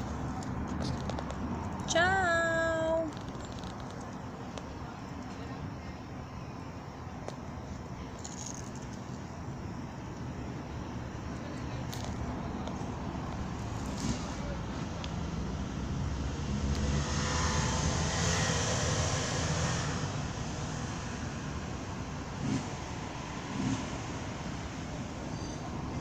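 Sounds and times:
outdoor background noise: 0.0s - 26.0s
road vehicle passing: 10.3s - 26.0s.

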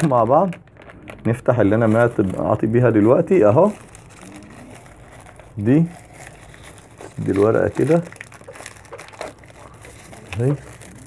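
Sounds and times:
packet crinkling as peeled open: 0.0s - 11.0s.

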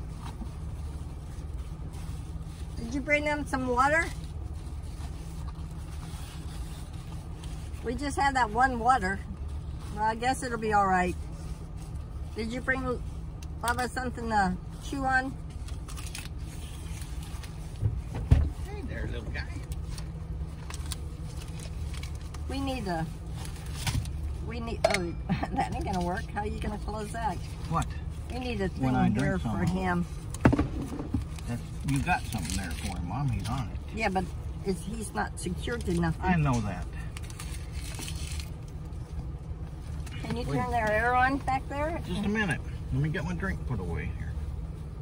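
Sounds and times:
vehicle rumble inside car cabin: 0.0s - 45.0s
low thump: 30.4s - 31.2s.

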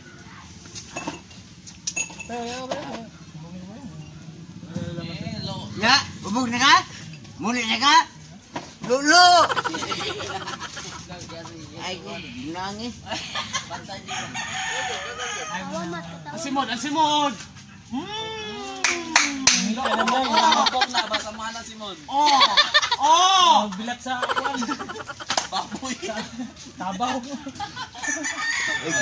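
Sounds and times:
rooster crowing: 14.0s - 16.1s, 27.9s - 29.0s.

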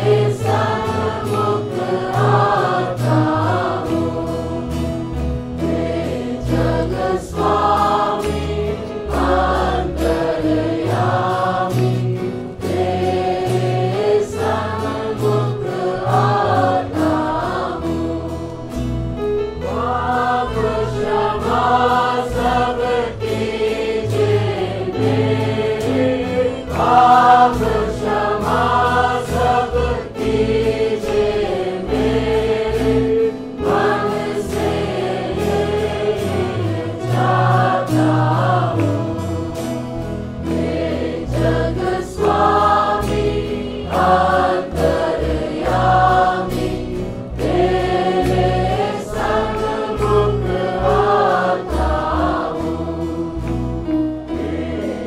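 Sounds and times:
gospel choir singing: 0.0s - 55.0s
instrumental backing with bass: 0.0s - 55.0s.

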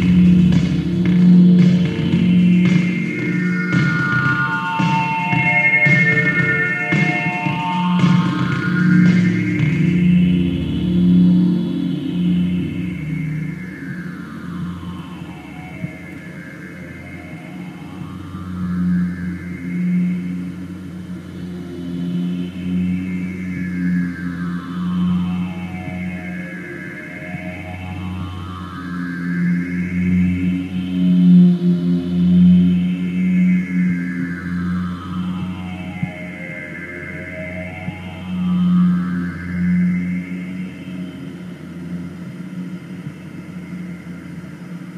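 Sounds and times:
clicking rhythmic pattern: 0.0s - 19.2s
synthesizer drone music: 0.0s - 44.9s.

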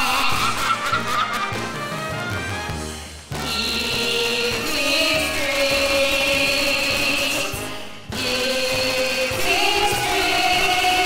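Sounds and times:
backing music: 0.0s - 11.0s
singers holding long note: 3.4s - 11.0s.

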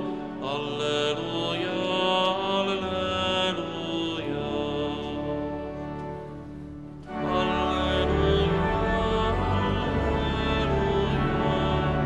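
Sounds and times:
instrumental accompaniment chords: 2.3s - 12.0s.

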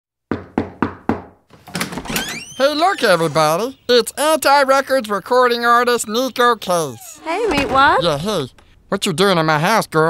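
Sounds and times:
knocks on a door: 0.3s - 1.4s.

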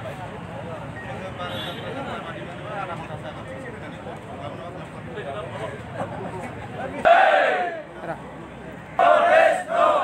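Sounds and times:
background crowd murmur: 0.0s - 10.0s
rhythmic crowd chant: 7.0s - 7.8s, 9.0s - 10.0s
crowd shouting a slogan: 7.0s - 7.9s, 8.9s - 10.0s.

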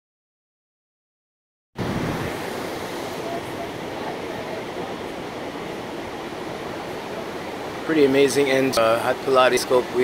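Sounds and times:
ocean waves breaking on beach: 1.8s - 10.0s.

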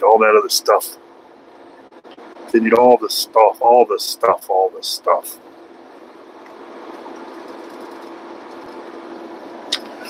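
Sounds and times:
low hum: 0.0s - 10.0s
road and engine drone: 0.0s - 10.0s.

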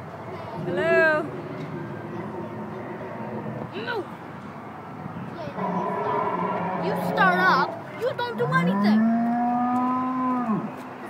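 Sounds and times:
dinosaur call through speaker: 5.6s - 7.7s.

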